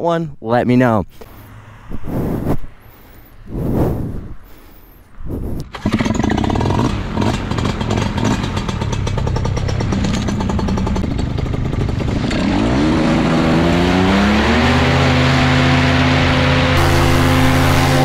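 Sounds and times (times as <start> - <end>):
paramotor engine revving: 5.6 - 18.0.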